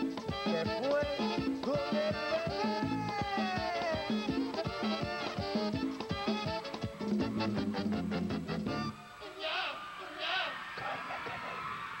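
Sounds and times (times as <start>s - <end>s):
people shouting: 2.6s - 3.9s, 9.2s - 12.0s
tape hiss: 4.0s - 12.0s.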